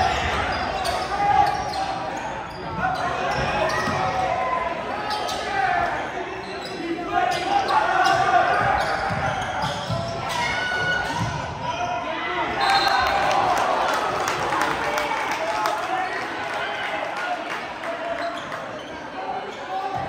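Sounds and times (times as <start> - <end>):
crowd talking and calling out: 0.0 - 20.0.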